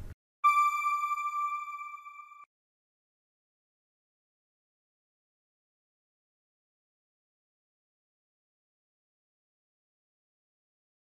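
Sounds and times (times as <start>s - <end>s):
electronic logo tone: 0.4s - 2.5s.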